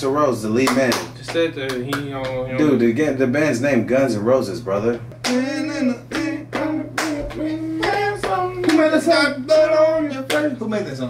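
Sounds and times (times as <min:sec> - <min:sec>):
man singing: 0:05.2 - 0:10.8.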